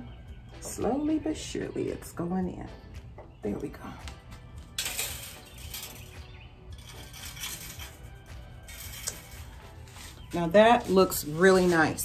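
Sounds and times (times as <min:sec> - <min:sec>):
soft background music: 0:00.0 - 0:12.0
metal decoration clinking: 0:04.6 - 0:09.7.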